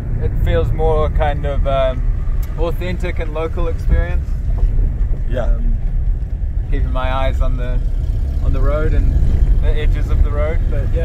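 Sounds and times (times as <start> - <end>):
car engine and tyres rumbling: 0.0 - 11.0
people talking: 0.2 - 4.3, 5.3 - 5.8, 6.7 - 7.8, 8.4 - 11.0.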